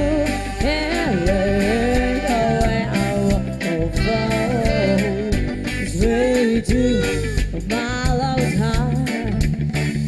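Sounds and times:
woman singing: 0.0s - 9.4s
live band music: 0.0s - 10.0s.

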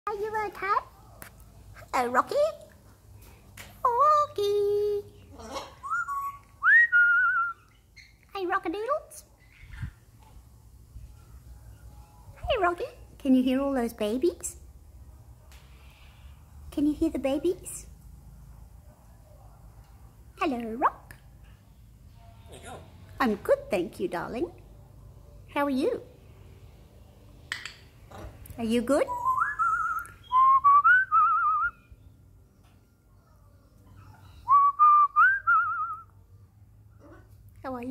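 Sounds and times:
parrot whistling: 5.8s - 8.1s, 29.1s - 31.9s.

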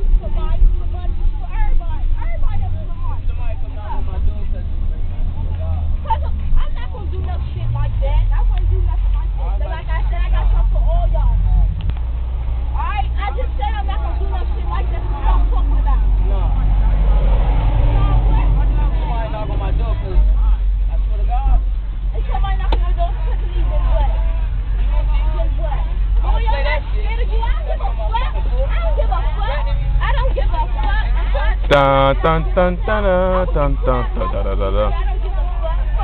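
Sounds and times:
bus engine and road noise: 0.0s - 36.0s
students talking: 0.0s - 36.0s.

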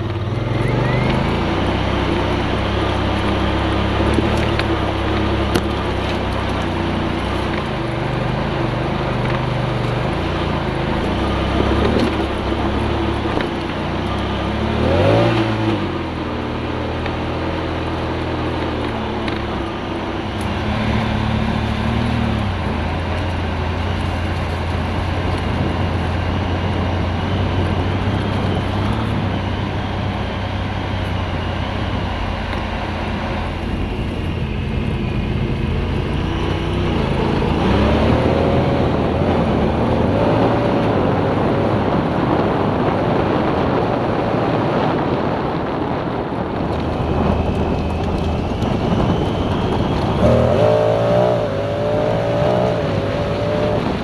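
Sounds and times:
tyres on dirt and gravel: 0.0s - 54.0s
vehicle engine running: 0.0s - 54.0s.

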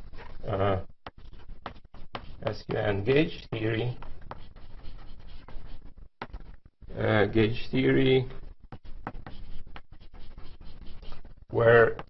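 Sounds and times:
chalk tapping: 1.0s - 2.9s, 3.9s - 6.6s, 8.7s - 12.0s
chalk scratching on blackboard: 1.0s - 6.6s, 8.3s - 12.0s.

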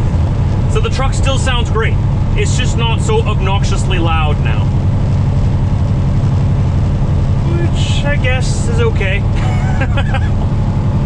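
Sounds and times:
truck diesel engine drone: 0.0s - 11.0s.

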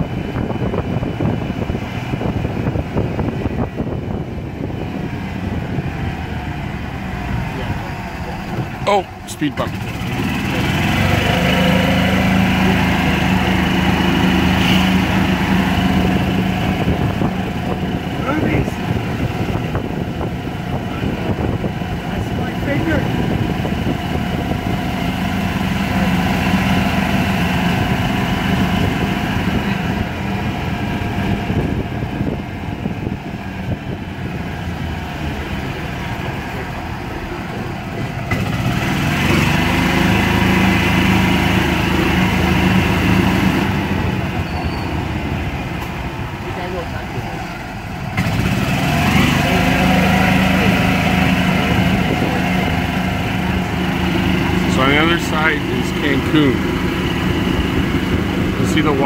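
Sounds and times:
road noise: 0.0s - 59.0s
small vehicle engine running: 0.0s - 59.0s.

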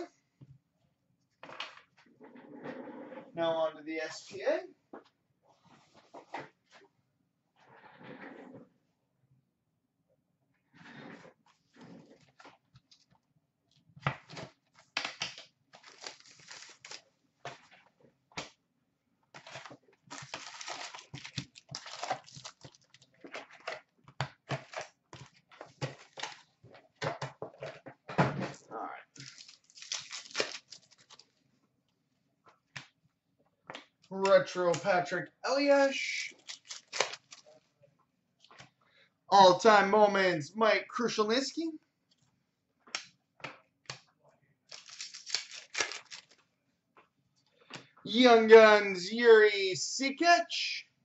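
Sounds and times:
wrapper tearing and crinkling: 15.0s - 17.0s, 19.4s - 23.5s, 29.2s - 31.3s, 36.3s - 37.5s, 44.7s - 46.4s
foil packs rustling: 15.8s - 17.0s, 19.4s - 23.7s, 29.2s - 31.3s, 36.3s - 37.5s, 44.7s - 46.4s.

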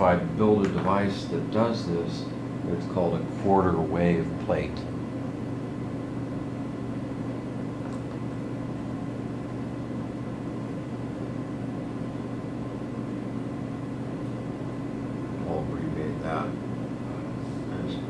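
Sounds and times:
cooling fan humming: 0.0s - 18.0s.

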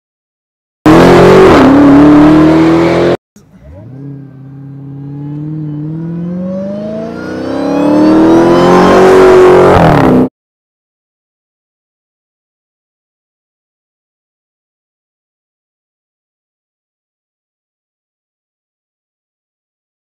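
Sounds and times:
car engine revving: 0.9s - 10.3s.

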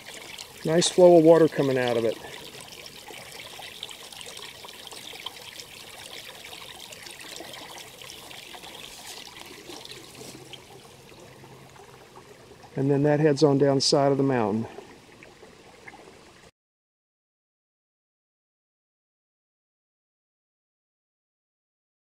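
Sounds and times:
water trickling into rocky pool: 0.0s - 16.5s.

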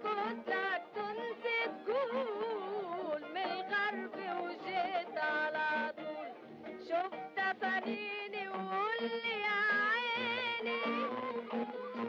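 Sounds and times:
instrumental accompaniment: 0.0s - 12.0s
woman singing: 0.0s - 12.0s.

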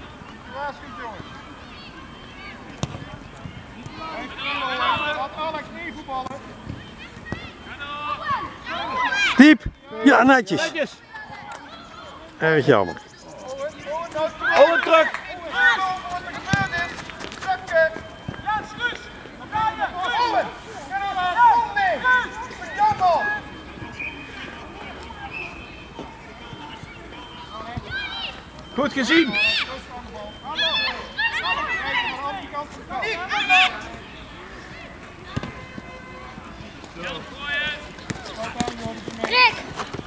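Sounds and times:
young voices shouting calls: 0.5s - 39.8s.

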